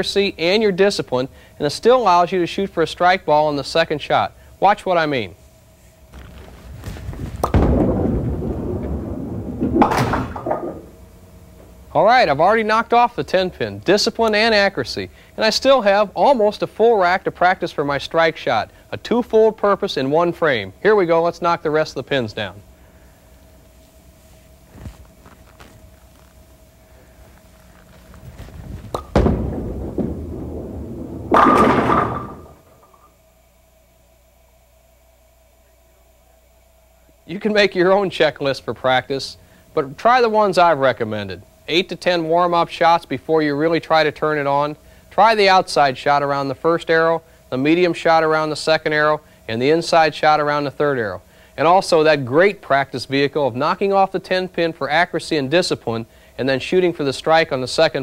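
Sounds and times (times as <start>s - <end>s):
bowling ball rolling rumble: 6.1s - 11.0s, 27.6s - 33.1s
bowling ball thud on wooden lane: 7.1s - 11.0s, 28.4s - 33.1s
bowling pin clatter: 9.6s - 11.0s, 28.0s - 33.1s.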